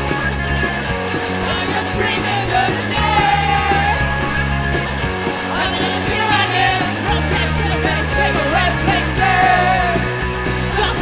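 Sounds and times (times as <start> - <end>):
bass line: 0.0 - 11.0
punk rock instrumental: 0.0 - 11.0.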